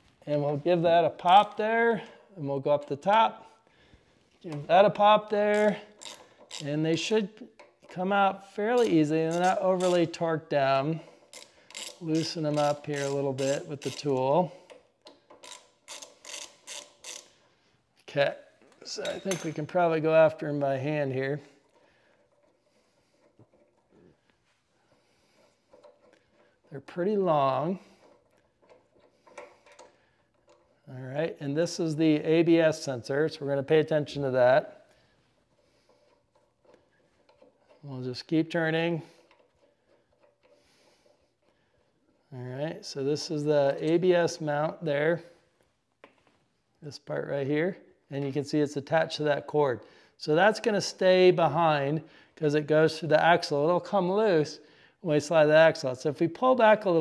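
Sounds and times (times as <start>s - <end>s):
ratchet wrench clicking: 5.5s - 6.7s, 8.8s - 10.1s, 11.2s - 14.1s, 14.7s - 17.3s
faint small ticks of bolt unscrewing: 35.9s - 37.8s.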